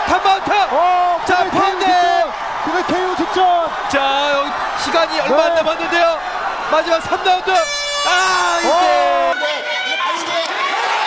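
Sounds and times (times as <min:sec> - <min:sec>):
men shouting excitedly: 0:00.0 - 0:11.0.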